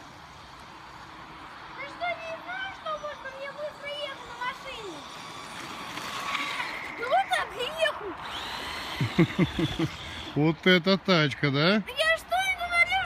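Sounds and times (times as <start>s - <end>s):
toy truck electric motor whining: 0.0s - 10.4s.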